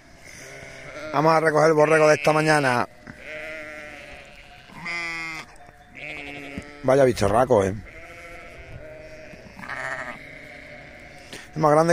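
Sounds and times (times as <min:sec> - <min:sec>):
sheep bleating: 0:00.2 - 0:11.9.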